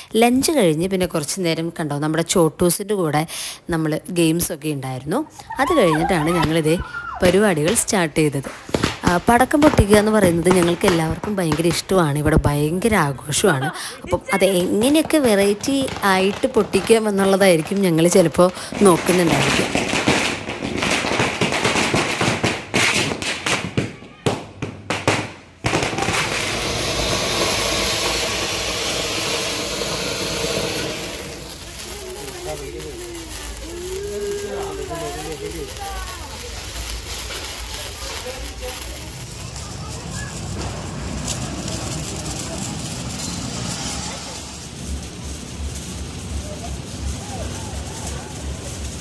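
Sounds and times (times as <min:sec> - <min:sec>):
firecrackers popping: 0:00.0 - 0:49.0
fountain firework hissing: 0:05.0 - 0:23.7, 0:25.6 - 0:49.0.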